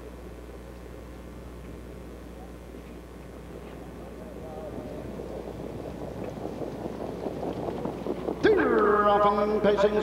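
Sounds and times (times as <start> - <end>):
rumble of approaching horses: 0.0 - 10.0
crowd voices: 2.2 - 10.0.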